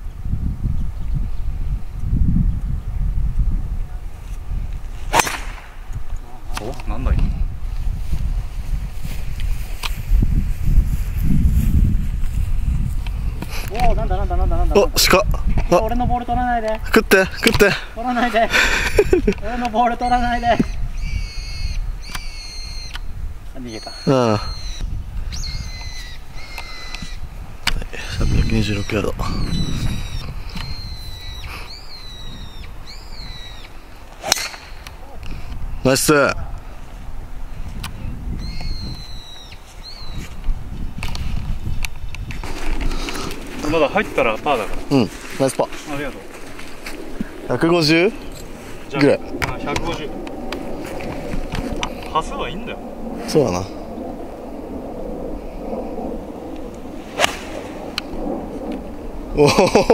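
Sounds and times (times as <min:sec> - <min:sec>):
golf club striking ball: 0:05.1 - 0:05.8, 0:34.2 - 0:34.9, 0:57.1 - 0:58.2
bird whistling calls: 0:20.0 - 0:27.2, 0:28.1 - 0:33.8, 0:38.4 - 0:40.2.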